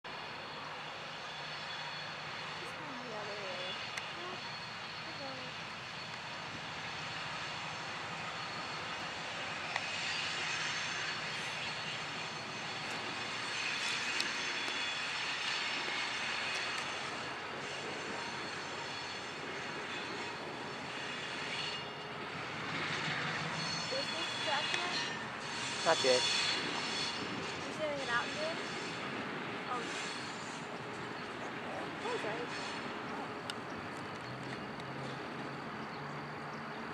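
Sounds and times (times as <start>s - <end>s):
diesel locomotive engine running: 0.1s - 36.9s.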